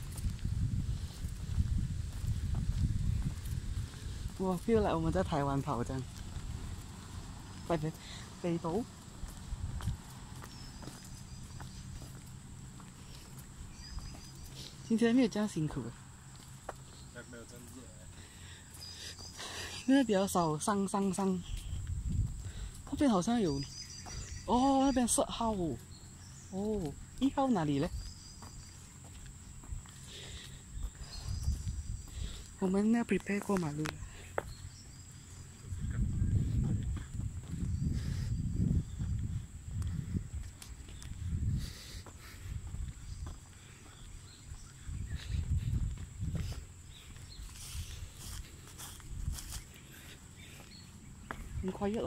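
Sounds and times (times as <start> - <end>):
jogging footsteps on pavement: 0.0 - 20.0, 20.8 - 52.0.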